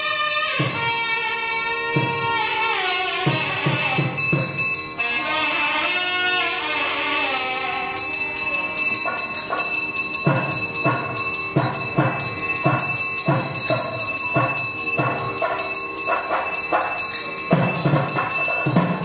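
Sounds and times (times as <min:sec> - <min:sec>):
drum beating steadily: 0:00.0 - 0:19.0
high bell ringing: 0:00.0 - 0:19.0.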